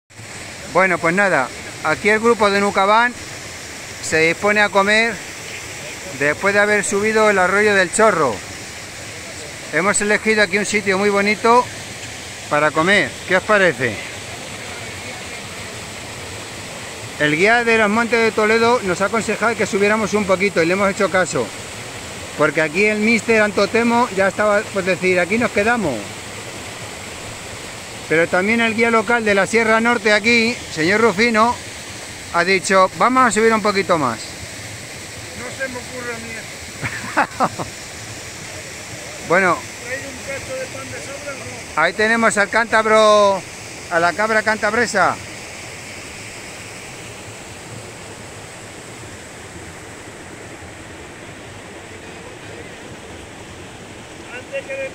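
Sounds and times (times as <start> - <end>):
stream rushing over rocks: 0.1 - 54.9
waterfall pouring into pool: 0.1 - 54.9.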